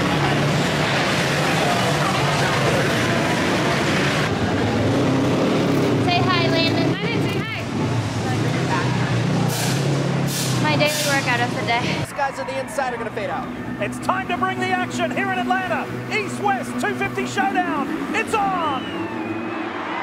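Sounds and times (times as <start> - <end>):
indistinct talking: 0.0 - 19.5
dirt bike engines droning: 0.0 - 20.0.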